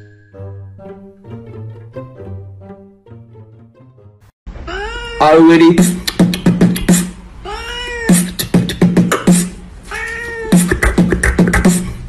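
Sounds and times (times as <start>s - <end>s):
cat meowing: 4.7s - 5.6s, 7.4s - 8.3s, 9.9s - 10.7s
beatbox rhythm: 5.7s - 7.2s, 8.1s - 9.6s, 10.5s - 12.0s.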